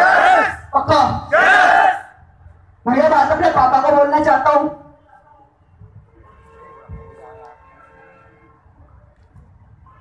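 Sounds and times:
crowd shouting together: 0:00.0 - 0:00.6, 0:01.3 - 0:02.2.

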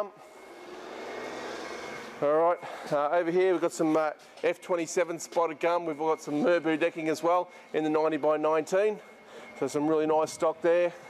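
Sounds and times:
engine noise: 0:00.0 - 0:03.8.

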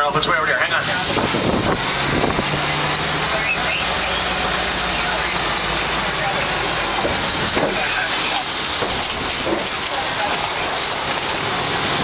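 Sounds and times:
road and wind noise: 0:00.0 - 0:12.0
truck engine running: 0:00.0 - 0:12.0.

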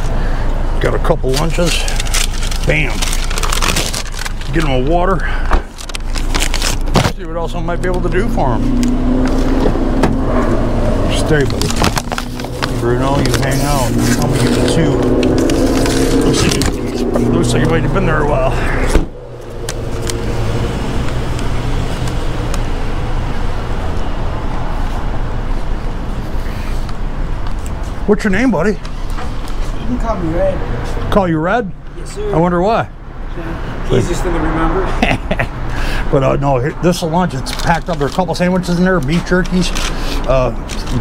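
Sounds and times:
road traffic: 0:00.0 - 0:41.0
low engine hum: 0:05.2 - 0:28.0
steady low rumble: 0:07.3 - 0:26.4.

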